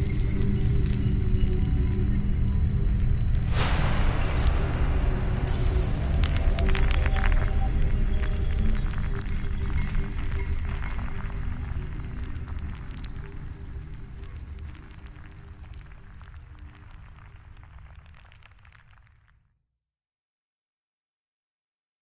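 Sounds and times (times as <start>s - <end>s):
faint ambient drone: 0.0s - 17.5s
wind rumbling against microphone: 3.4s - 17.6s.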